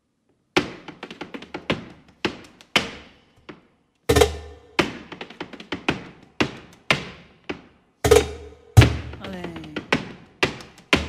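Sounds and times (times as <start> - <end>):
sharp percussive strikes: 4.1 - 5.2, 8.0 - 9.8.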